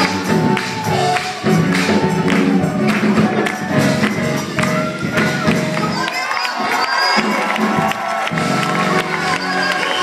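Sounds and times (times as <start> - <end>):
congregation cheering and shouting: 0.0 - 10.0
live gospel choir and band: 0.0 - 10.0.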